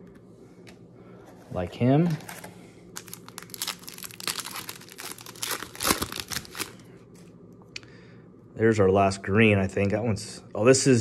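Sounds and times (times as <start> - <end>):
foil wrapper tearing and crinkling: 3.0 - 6.8.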